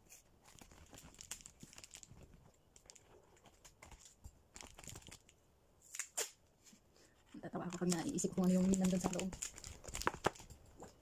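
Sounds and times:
paper gift bag crinkling: 7.6 - 10.5.

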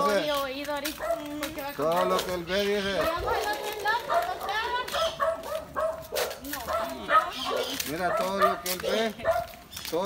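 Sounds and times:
people's voices: 0.0 - 10.0
dog barking: 1.0 - 1.3, 3.0 - 9.6.

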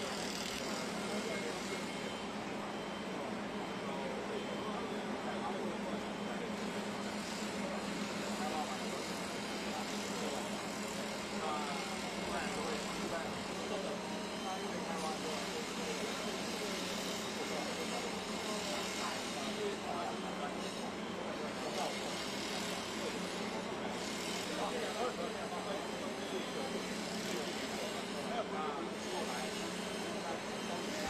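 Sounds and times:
construction machinery engine hum: 0.0 - 31.0
steady mechanical noise: 0.0 - 31.0.

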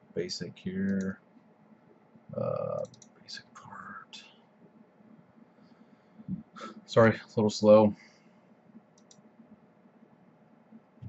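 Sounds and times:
computer mouse clicks: 0.9 - 1.1, 2.7 - 3.2, 8.8 - 9.3.

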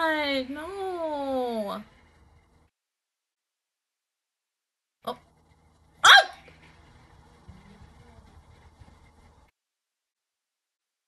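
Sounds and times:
faint low background sound: 0.0 - 10.9.

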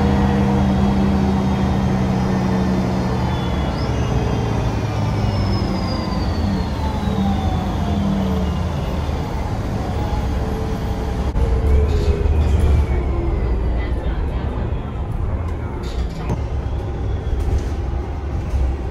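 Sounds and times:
bus engine humming: 0.0 - 18.9
gearbox whistling: 2.2 - 9.4.

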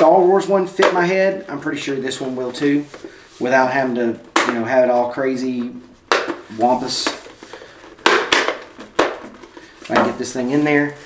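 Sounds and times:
plastic helmet clacking: 0.0 - 1.7, 4.2 - 10.5.

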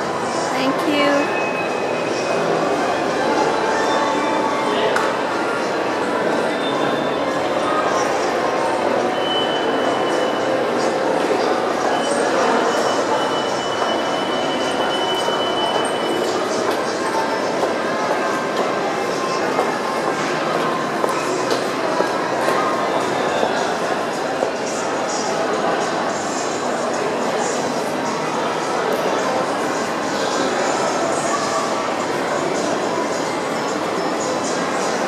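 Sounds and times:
echoing mall background noise: 0.0 - 35.0.

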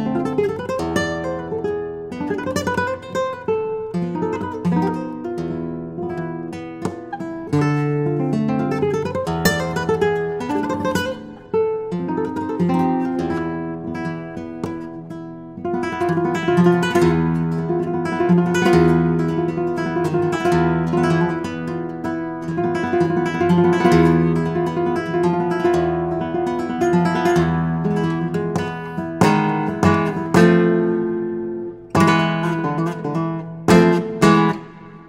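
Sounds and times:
flamenco guitar played solo: 0.0 - 35.0.

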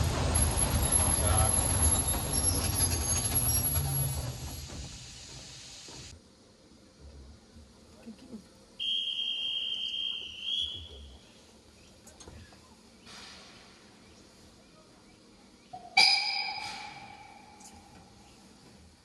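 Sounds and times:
hand whistle high note: 8.8 - 11.0
steam locomotive whistle: 8.8 - 11.0.

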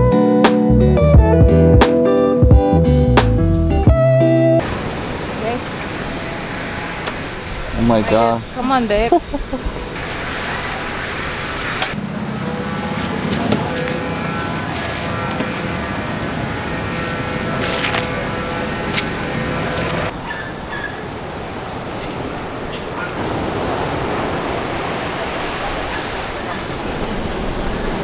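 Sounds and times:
street noise: 0.0 - 28.0
breaking surf: 4.6 - 28.0.

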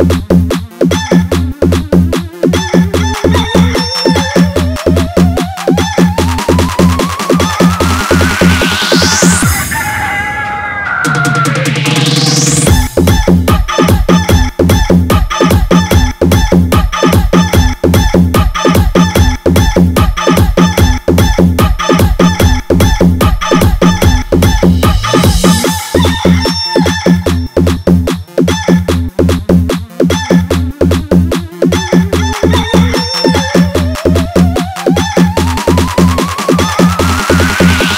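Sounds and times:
electronic dance music: 0.0 - 37.9
rising synth sweep: 6.2 - 13.0, 35.4 - 37.9.

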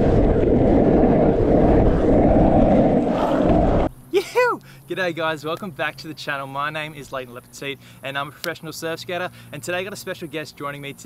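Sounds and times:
wind buffeting microphone: 0.0 - 4.0.

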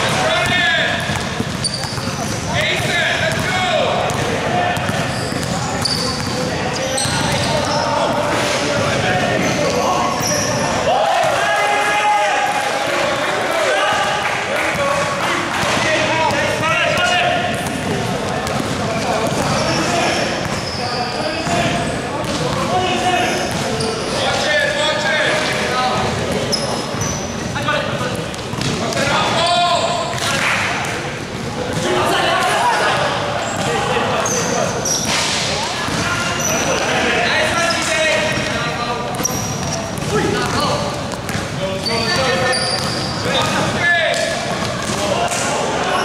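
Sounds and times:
basketball bouncing on court: 0.0 - 9.9, 13.9 - 23.9, 27.9 - 31.0, 34.9 - 36.9, 38.2 - 45.4
sneaker squeaks: 0.0 - 10.8, 15.7 - 25.6, 26.2 - 30.5, 33.4 - 46.0
players' indistinct calls: 0.0 - 46.0.

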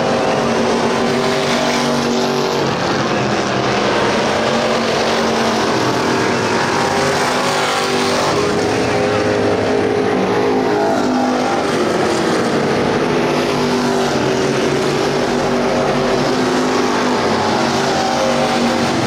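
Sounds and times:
race car engines running hard: 0.0 - 19.0.

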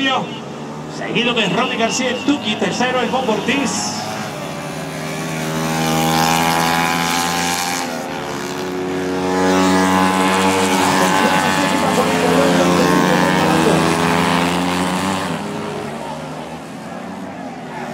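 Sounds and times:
racing motorcycle engines revving: 0.0 - 17.9.

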